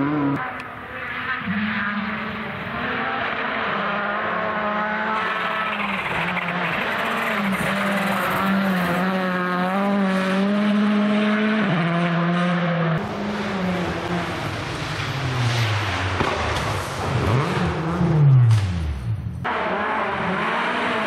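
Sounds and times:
rally car engine revving high: 0.0s - 21.0s.

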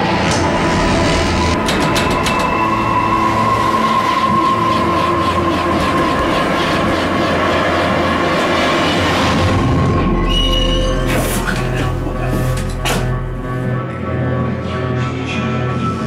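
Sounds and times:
lift car rumbling down shaft: 0.0s - 14.4s
high metallic whine: 0.0s - 16.0s.

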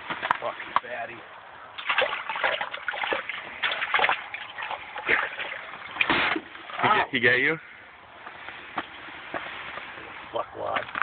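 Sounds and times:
fish thrashing and splashing water: 1.7s - 6.8s.

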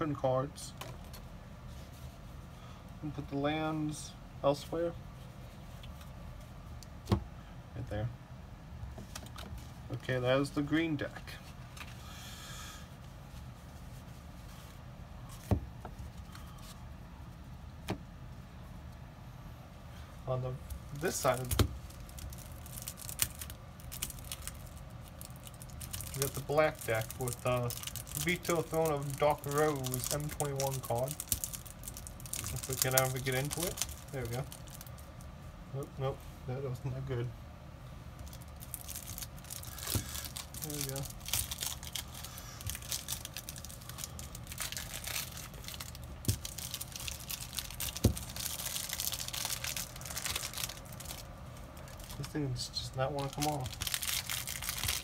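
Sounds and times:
plastic wrapping crinkling and tearing: 20.6s - 35.2s, 38.2s - 55.0s.

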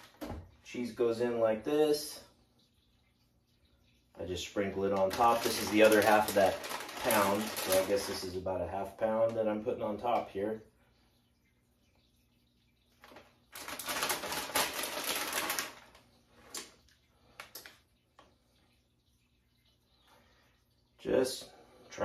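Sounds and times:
plastic bag crinkling: 4.7s - 8.4s, 13.0s - 17.8s.

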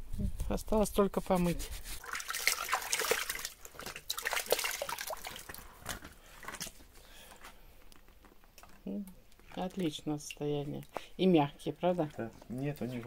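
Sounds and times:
hands splashing in bucket of water: 1.8s - 6.8s.

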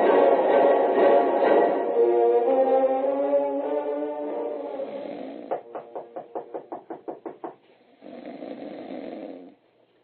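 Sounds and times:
person snoring: 4.7s - 5.6s, 7.9s - 9.6s
rapid knocking on a door: 5.5s - 7.6s.

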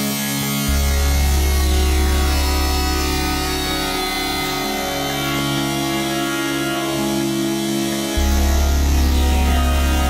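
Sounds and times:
synthesizer background music: 0.0s - 10.0s.

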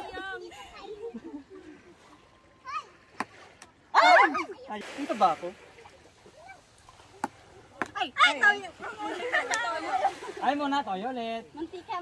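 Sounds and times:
voices calling out: 0.0s - 10.7s.

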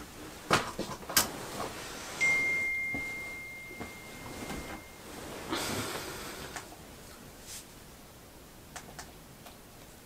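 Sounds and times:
high chime tone: 2.2s - 5.4s.

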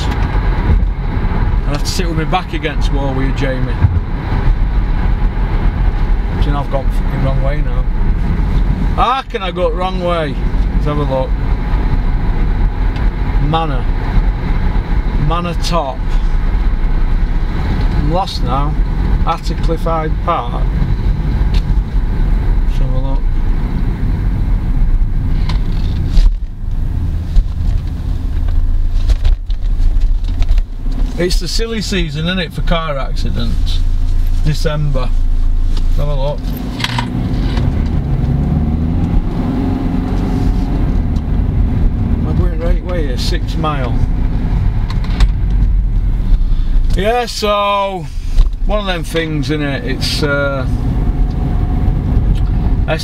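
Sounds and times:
car cabin road and engine rumble: 0.0s - 53.0s.

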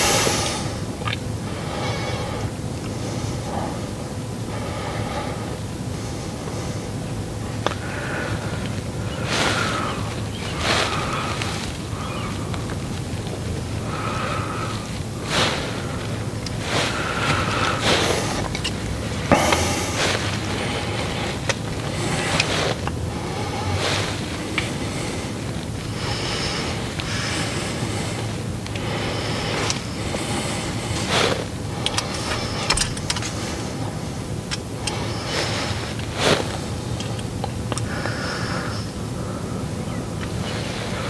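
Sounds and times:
low vehicle rumble: 0.0s - 41.0s
rustles: 0.0s - 41.0s.

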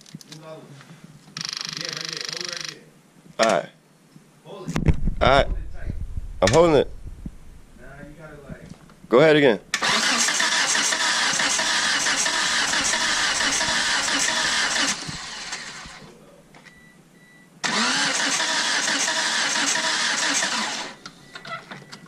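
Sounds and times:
car starter motor cranking: 9.7s - 16.2s, 17.6s - 21.7s.

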